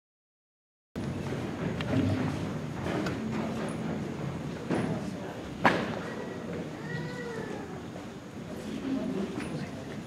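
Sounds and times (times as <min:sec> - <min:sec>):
low murmur of people: 0:01.0 - 0:10.0
faint drawn-out voice: 0:05.0 - 0:10.0
sharp knock: 0:05.6 - 0:06.0.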